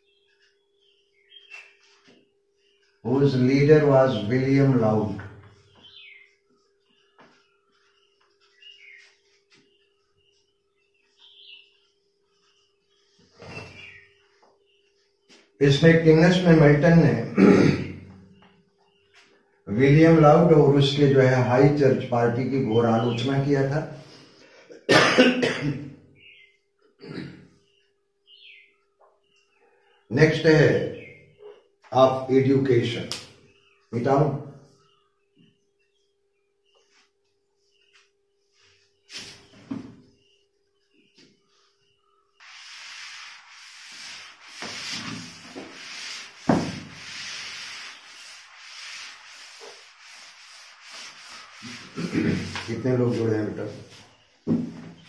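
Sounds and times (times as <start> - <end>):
man coughing: 24.7 - 25.9, 52.0 - 52.5
eraser scrubbing whiteboard: 42.4 - 54.2.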